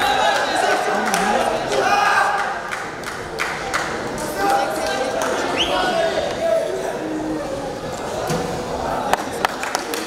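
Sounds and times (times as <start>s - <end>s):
crowd shouting: 0.0s - 2.7s.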